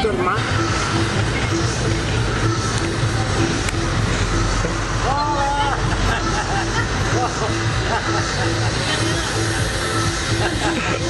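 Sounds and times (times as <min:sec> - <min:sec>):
background music repeating notes: 0:00.0 - 0:11.0
people exclaiming and chattering: 0:03.3 - 0:11.0.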